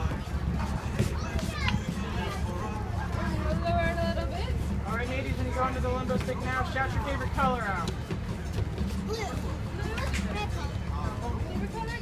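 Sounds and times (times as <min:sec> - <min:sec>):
children's voices: 0:00.8 - 0:03.7, 0:09.0 - 0:12.0.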